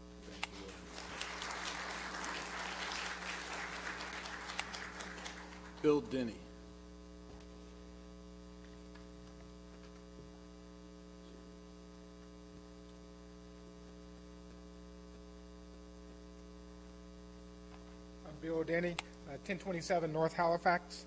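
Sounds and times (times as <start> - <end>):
low electrical mains hum: 0.0 - 21.0.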